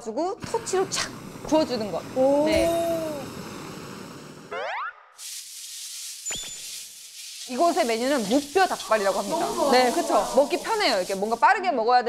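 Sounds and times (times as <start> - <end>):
food sizzling in a pan: 0.4 - 4.6, 5.2 - 11.6.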